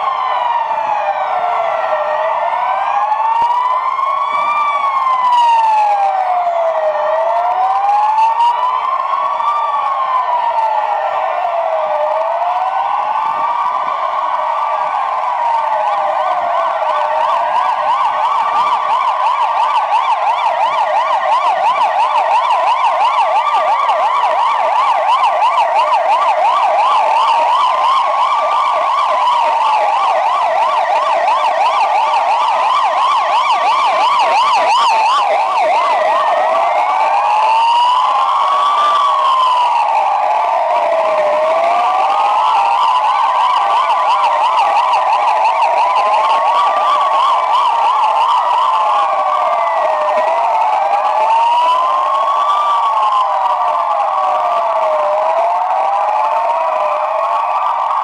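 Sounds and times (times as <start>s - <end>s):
police sirens wailing: 0.0s - 58.0s
police sirens yelping: 0.0s - 58.0s.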